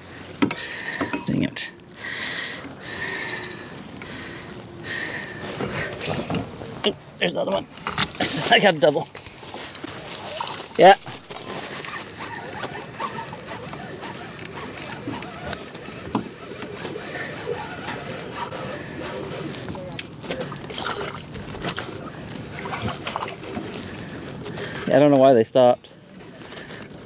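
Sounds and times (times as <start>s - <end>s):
water sloshing around kayak: 0.0s - 24.9s
fishing gear clicks and knocks: 7.5s - 17.0s.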